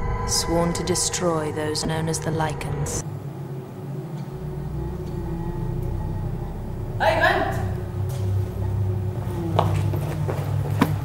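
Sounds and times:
deeper rumble: 0.0 - 11.0
low rumble: 0.0 - 11.0
faint held hum: 0.5 - 11.0.

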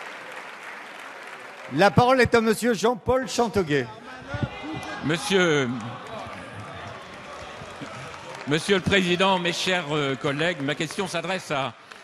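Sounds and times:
murmur of many voices: 3.2 - 12.0.

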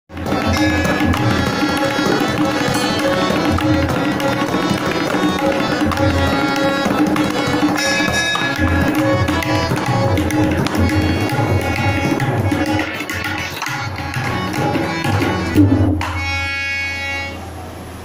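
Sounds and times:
tabla playing: 0.1 - 17.4
harmonium holding notes: 0.1 - 17.6.

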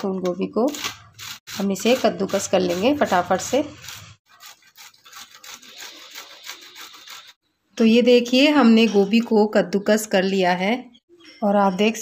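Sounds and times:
rasping scrapes on metal grater: 1.2 - 7.4.

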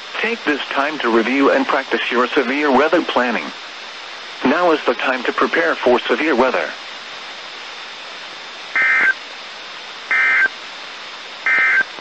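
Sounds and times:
radio hiss: 0.0 - 12.0
data-tone bursts: 8.8 - 9.2, 10.1 - 10.5, 11.5 - 11.9.

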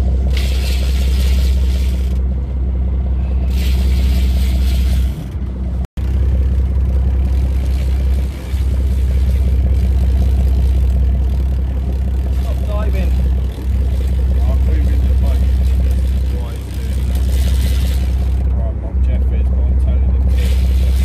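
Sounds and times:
boat engine droning: 0.0 - 21.0.

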